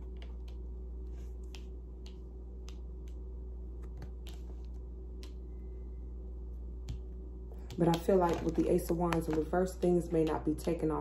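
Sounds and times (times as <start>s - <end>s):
cards clicking and tapping: 0.0s - 5.4s, 6.8s - 9.5s
steady low hum: 0.0s - 11.0s.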